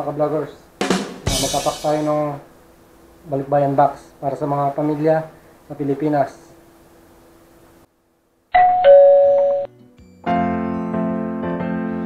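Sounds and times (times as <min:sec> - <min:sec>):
two-note doorbell chime: 0:08.6 - 0:09.7.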